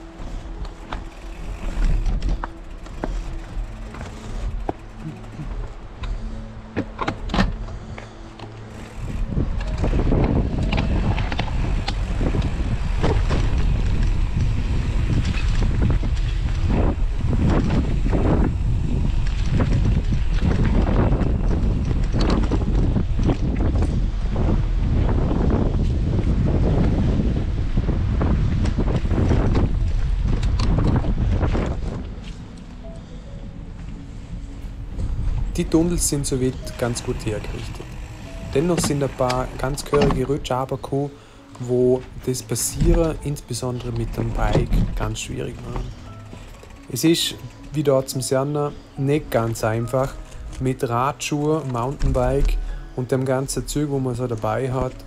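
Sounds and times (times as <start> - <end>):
bike tyres crunching on gravel: 0.0 - 5.9, 34.8 - 55.0
wind noise on microphone: 0.0 - 55.0
bike clicks and knocks: 0.2 - 24.5, 28.2 - 32.8, 34.6 - 55.0.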